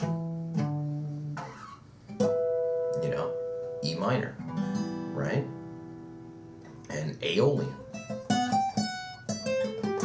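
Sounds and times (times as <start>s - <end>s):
acoustic guitar notes ringing: 0.0s - 10.0s.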